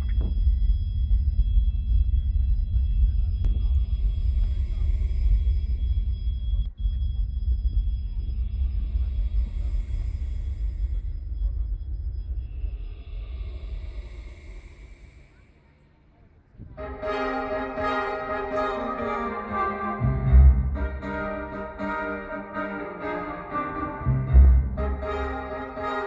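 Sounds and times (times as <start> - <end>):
deep low drone: 0.0 - 26.0
hissing swell: 16.7 - 26.0.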